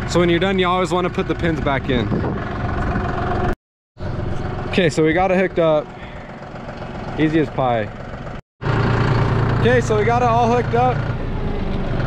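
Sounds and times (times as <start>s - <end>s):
tractor engine idling: 0.0s - 12.0s.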